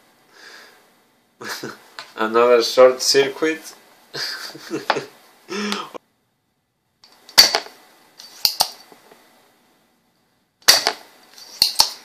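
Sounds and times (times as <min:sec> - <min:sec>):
desoldering pump snapping: 0:11.6 - 0:12.0.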